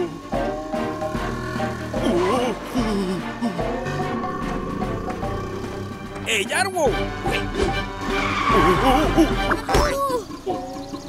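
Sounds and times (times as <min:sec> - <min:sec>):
background music: 0:00.0 - 0:11.0
tyres screeching: 0:00.5 - 0:10.4.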